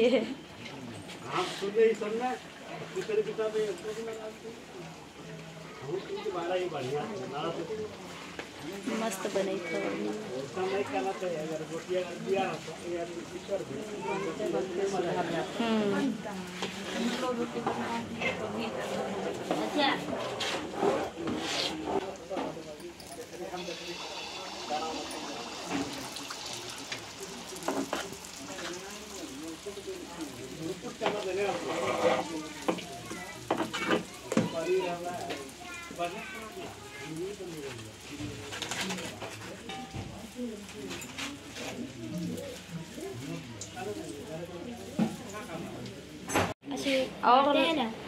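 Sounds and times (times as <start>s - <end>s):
oil crackling in frying pans: 0.2s - 15.5s, 16.1s - 46.6s
women's voices: 15.5s - 16.7s
ladle scraping metal bowl: 18.4s - 22.1s, 31.4s - 32.3s.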